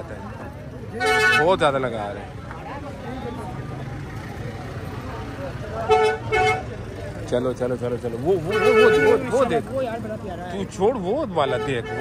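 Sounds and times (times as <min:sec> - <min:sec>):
market crowd hubbub: 0:00.0 - 0:12.0
vehicle horn toots: 0:01.0 - 0:01.6, 0:05.9 - 0:06.7, 0:08.5 - 0:09.4, 0:11.4 - 0:12.0.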